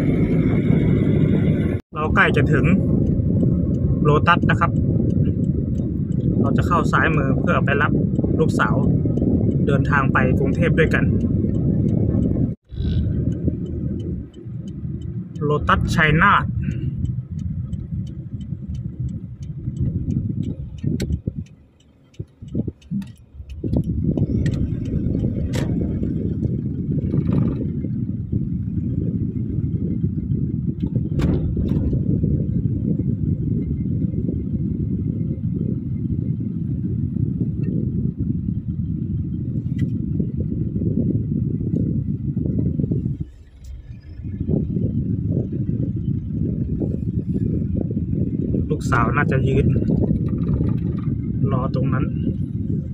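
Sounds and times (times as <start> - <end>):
car engine and tyre rumble: 0.0 - 52.9
sharp clicks: 10.9 - 27.7.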